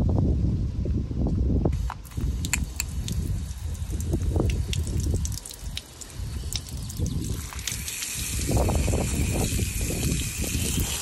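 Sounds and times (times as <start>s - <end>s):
spray gun clicks: 1.8s - 3.0s
water splashing on paving: 1.9s - 11.0s.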